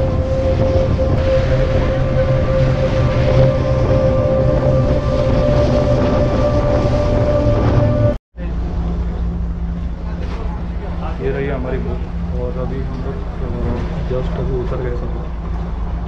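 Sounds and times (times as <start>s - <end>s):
ferry engine rumble: 0.0s - 16.0s
lower steady hum: 0.0s - 16.0s
sustained steady tone: 0.0s - 16.0s
wind: 0.0s - 16.0s.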